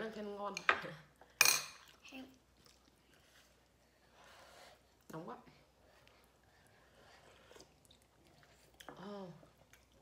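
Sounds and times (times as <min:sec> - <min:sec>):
metal spoon clinking ceramic: 0:01.4 - 0:01.8.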